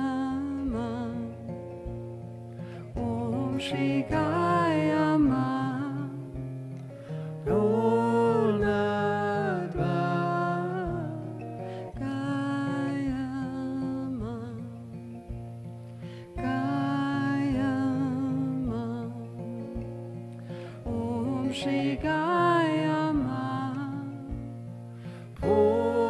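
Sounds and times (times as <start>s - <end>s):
acoustic guitar: 0.0s - 26.0s.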